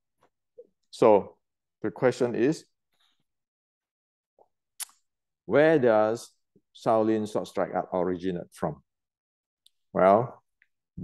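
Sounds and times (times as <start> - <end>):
man speaking: 10.0 - 10.4.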